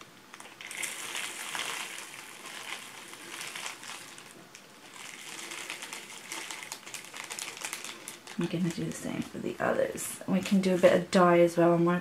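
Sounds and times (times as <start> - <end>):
plastic bag crinkling: 0.0 - 10.0
wax pellets pouring: 0.3 - 9.1.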